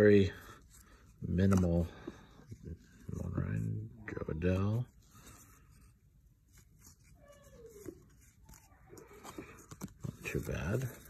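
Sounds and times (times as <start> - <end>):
cards being flipped: 0.8 - 1.9, 5.2 - 11.0.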